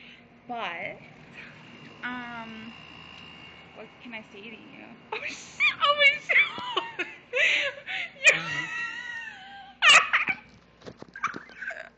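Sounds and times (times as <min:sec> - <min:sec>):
woman laughing hard: 0:06.4 - 0:10.5.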